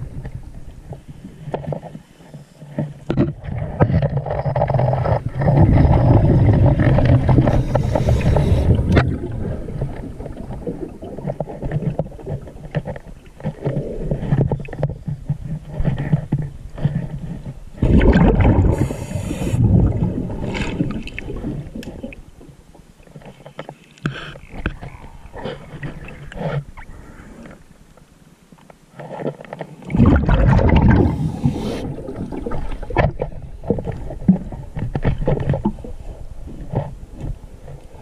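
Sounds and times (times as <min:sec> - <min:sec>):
quiet underwater bubbling: 0:00.0 - 0:28.2, 0:29.8 - 0:38.0
rumbling exhaust bubbles: 0:04.6 - 0:12.2, 0:17.8 - 0:21.7, 0:29.9 - 0:33.6
diver breathing through regulator: 0:07.3 - 0:09.0, 0:18.6 - 0:19.8, 0:31.0 - 0:32.2.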